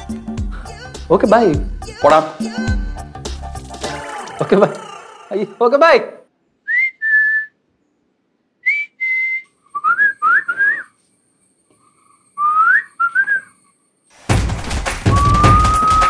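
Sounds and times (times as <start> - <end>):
loud music: 0.0 - 5.6, 14.3 - 16.0
person whistling a tune: 6.7 - 7.6, 8.6 - 11.0, 12.4 - 13.6, 15.0 - 16.0.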